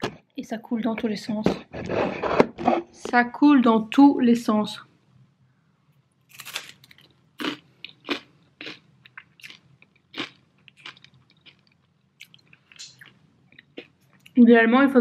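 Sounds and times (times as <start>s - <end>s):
crunching and chewing crispbread: 6.3s - 14.4s.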